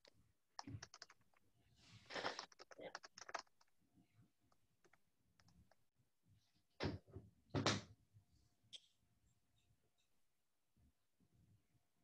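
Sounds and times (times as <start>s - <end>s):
keyboard typing and clicking: 0.0s - 1.4s, 2.1s - 3.7s, 4.5s - 5.8s.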